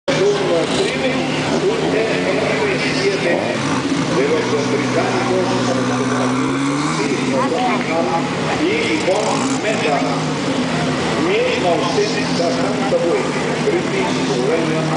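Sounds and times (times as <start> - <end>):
car engines idling: 0.1 - 14.9
engine revving: 0.1 - 14.9
people talking: 0.1 - 14.9.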